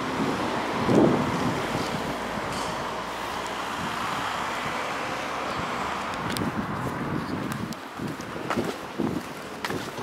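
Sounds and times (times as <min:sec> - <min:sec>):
wind buffeting microphone: 0:00.0 - 0:10.0
footsteps on pavement: 0:00.3 - 0:10.0.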